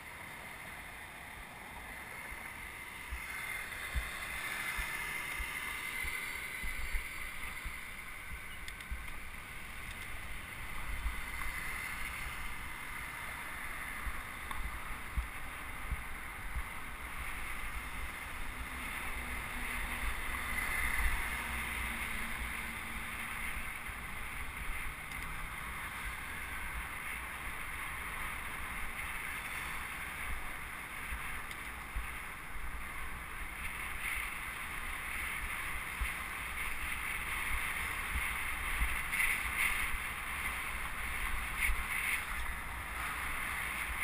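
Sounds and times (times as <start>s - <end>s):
road noise rushing: 0.0s - 44.0s.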